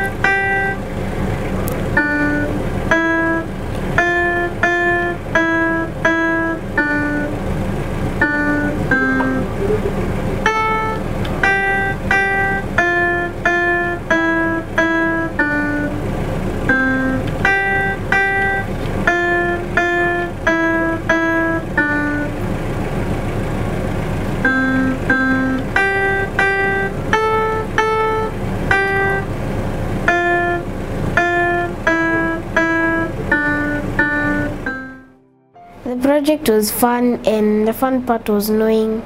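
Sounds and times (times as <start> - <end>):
electronic piano notes: 0.0 - 39.0.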